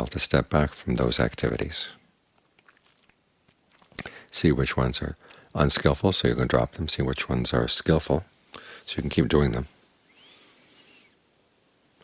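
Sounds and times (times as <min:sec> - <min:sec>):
background hiss: 0:00.0 - 0:12.0.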